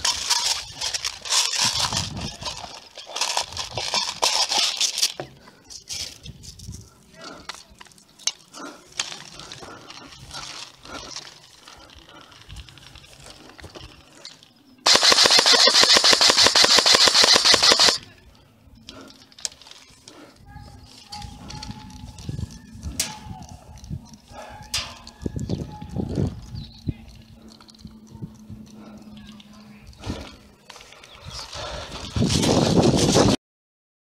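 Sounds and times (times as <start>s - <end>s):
distant voices: 6.9s - 32.2s
airsoft gun full-auto burst: 14.9s - 18.0s.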